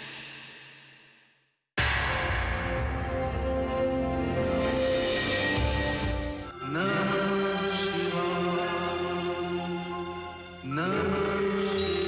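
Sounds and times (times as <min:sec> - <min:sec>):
music: 0:01.8 - 0:12.0
chanted mantra singing: 0:06.4 - 0:12.0.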